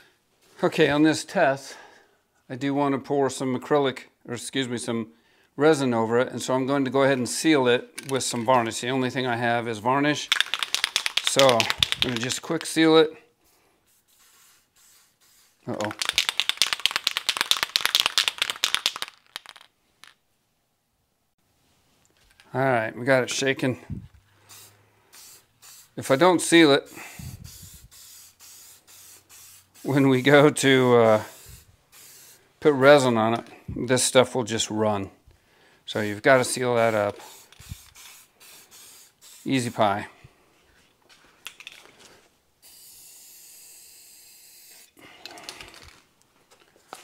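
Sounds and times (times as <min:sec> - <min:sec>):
aerosol spray can hissing: 0:10.3 - 0:12.4, 0:13.9 - 0:19.1, 0:24.5 - 0:26.2, 0:26.8 - 0:32.5, 0:36.5 - 0:39.7, 0:42.6 - 0:45.0.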